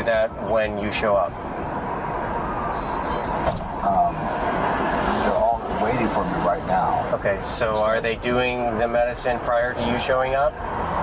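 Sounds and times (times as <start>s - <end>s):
street and vehicle noise: 0.0s - 11.0s
short high-pitched electronic beeps: 2.7s - 3.4s.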